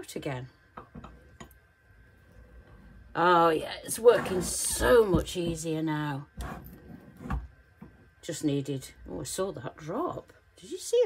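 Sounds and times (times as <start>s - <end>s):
low quiet hum: 0.0s - 11.0s.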